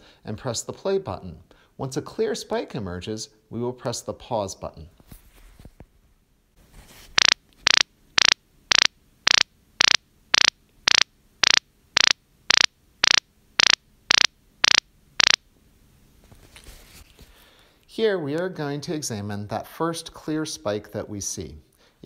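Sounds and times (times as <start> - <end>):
short high-pitched sound pulses: 7.2 - 15.4.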